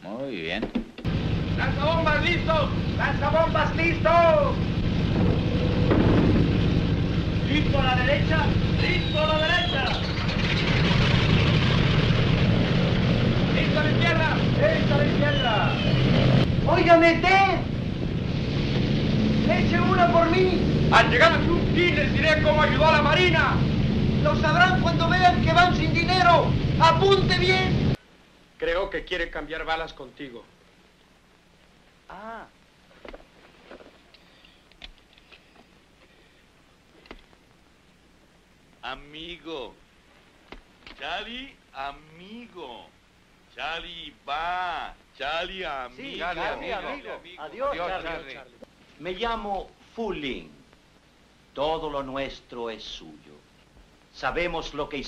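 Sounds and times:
steady hiss: 0.0 - 10.4, 11.3 - 55.0
piston aircraft engines droning: 1.1 - 28.0
soft clicks and rustles: 36.8 - 37.6.

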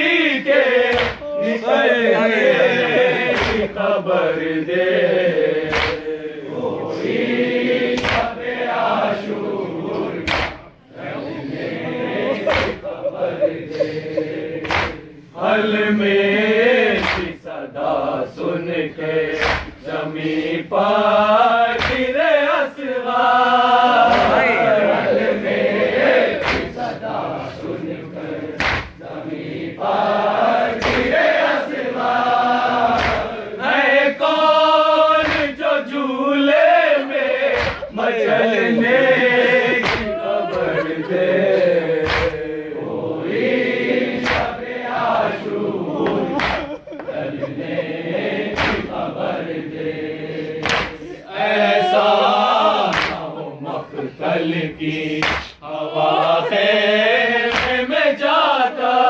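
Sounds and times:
crowd of men chanting: 0.0 - 59.0
group chest-beating strikes: 0.8 - 1.4, 2.4 - 3.8, 5.4 - 6.2, 7.8 - 8.4, 9.9 - 10.8, 12.2 - 15.3, 16.9 - 17.4, 19.3 - 19.8, 21.8 - 22.2, 24.0 - 24.6, 26.3 - 27.0, 28.6 - 29.1, 30.7 - 31.6, 32.6 - 33.4, 35.2 - 35.6, 37.2 - 42.7, 43.9 - 44.6, 45.9 - 49.1, 50.2 - 51.2, 52.6 - 53.4, 55.0 - 55.6, 57.4 - 57.9
sharp chest slaps: 0.9 - 1.2, 5.7 - 6.0, 8.0 - 8.3, 10.2 - 10.6, 14.6 - 15.0, 19.4 - 19.8, 21.8 - 22.1, 28.6 - 29.0, 30.8 - 31.1, 33.0 - 33.3, 37.6 - 37.9, 39.8 - 40.1, 42.0 - 42.4, 44.2 - 44.5, 46.4 - 46.7, 48.5 - 48.9, 50.6 - 51.0, 52.9 - 53.2, 55.2 - 55.6, 57.5 - 57.8.

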